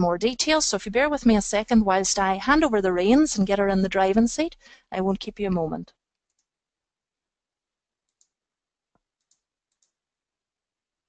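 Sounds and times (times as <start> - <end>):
computer mouse clicks: 6.2 - 6.5, 8.1 - 8.4, 9.2 - 10.0.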